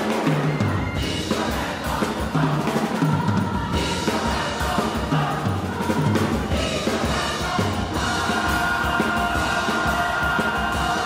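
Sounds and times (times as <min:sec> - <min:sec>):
drums beating: 0:00.0 - 0:11.0
large choir singing: 0:00.0 - 0:11.0.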